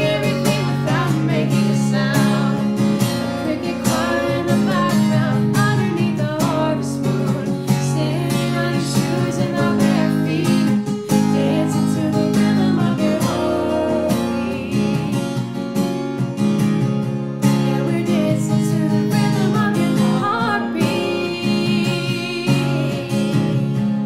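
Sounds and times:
acoustic guitar strumming: 0.0 - 24.0.

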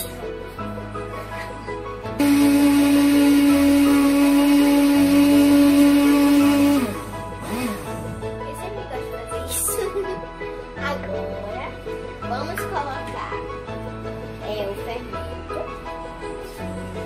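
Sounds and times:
background music: 0.0 - 17.0
blender motor running: 2.2 - 8.1.

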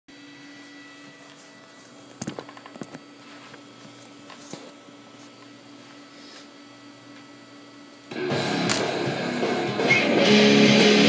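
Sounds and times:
electric guitar amp hum: 0.1 - 11.0.

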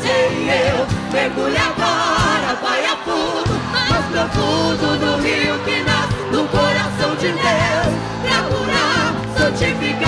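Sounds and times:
band playing: 0.0 - 10.0
voices singing gospel: 0.0 - 10.0.

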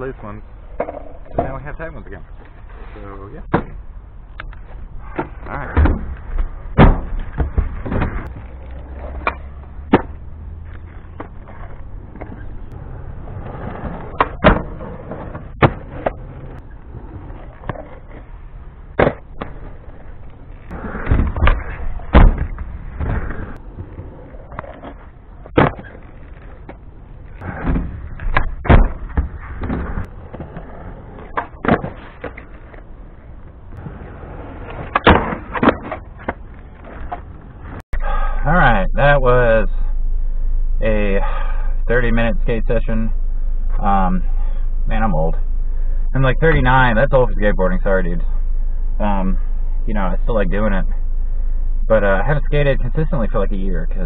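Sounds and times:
skateboard wheels rolling on concrete: 0.0 - 38.3.

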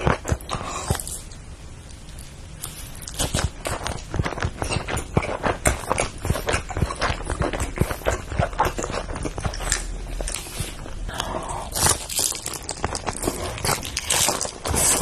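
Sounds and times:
chewing crunchy fried food: 0.0 - 15.0.

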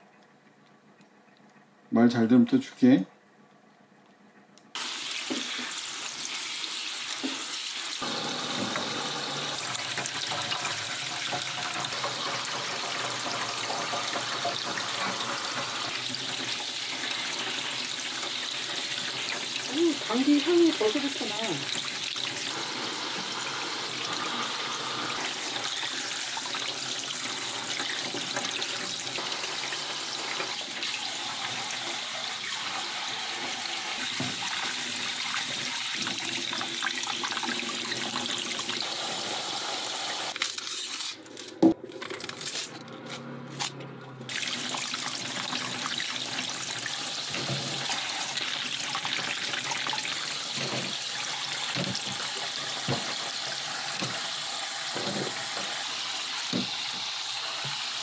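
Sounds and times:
faucet running into metal sink: 4.8 - 40.4, 44.3 - 58.0
vegetables rinsed in metal bowl: 4.8 - 41.2, 43.6 - 58.0.

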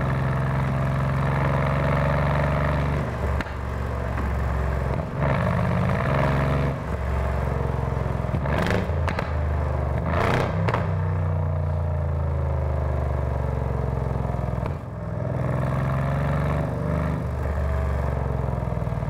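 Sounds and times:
car engine under load: 0.0 - 19.0
exhaust crackle: 0.1 - 11.0.

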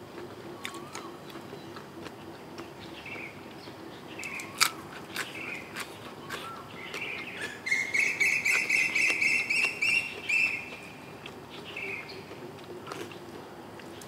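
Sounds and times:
bird calling: 0.5 - 1.8, 4.0 - 12.3
crunching bites of raw vegetable: 4.2 - 7.7.

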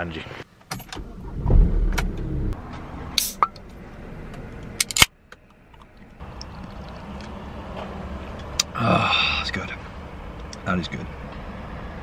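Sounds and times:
car engine starting and idling: 0.7 - 8.8.

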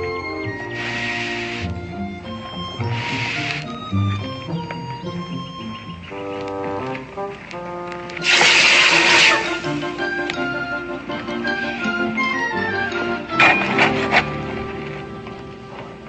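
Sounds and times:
background music: 0.0 - 16.0
hiss of steam from quenched iron: 0.7 - 1.7, 2.8 - 3.6, 8.2 - 10.1.

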